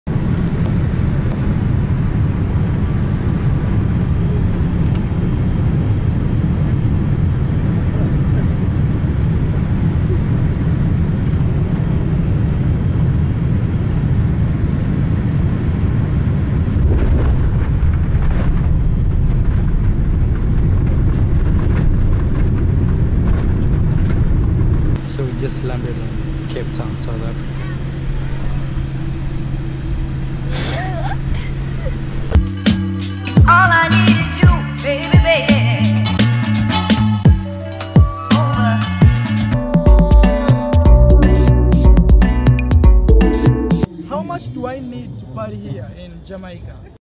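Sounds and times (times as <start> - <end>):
jet engines and wheels rumbling: 0.1 - 41.8, 43.5 - 47.0.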